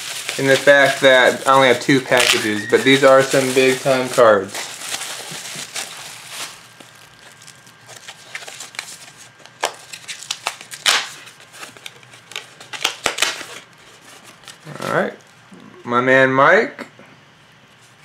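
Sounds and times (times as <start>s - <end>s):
bubble wrap and paper crinkling: 0.0s - 15.4s.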